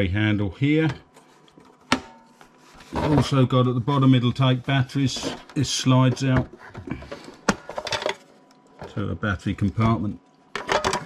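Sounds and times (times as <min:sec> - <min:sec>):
plastic cover clicking and rattling: 0:05.2 - 0:09.0, 0:10.6 - 0:11.0.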